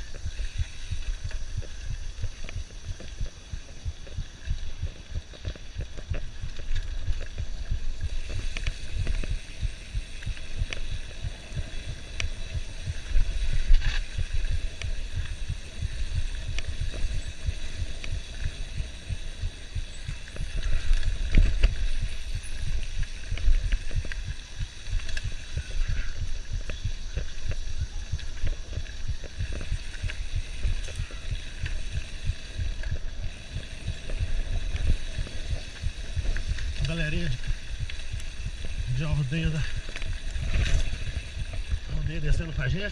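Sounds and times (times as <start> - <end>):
mountain bike knocking and rattling: 0.0 - 42.9
wind buffeting microphone: 0.0 - 42.9.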